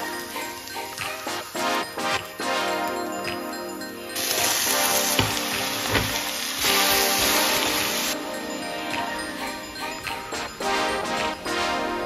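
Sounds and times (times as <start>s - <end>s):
background music: 0.0s - 12.0s
chicken sizzling in hot oil: 4.2s - 8.2s.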